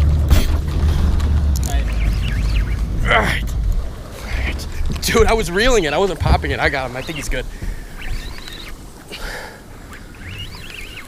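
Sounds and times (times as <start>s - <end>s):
low steady rumble: 0.0s - 10.8s
rushing water from boat wake: 0.0s - 11.0s
wind: 0.0s - 11.0s.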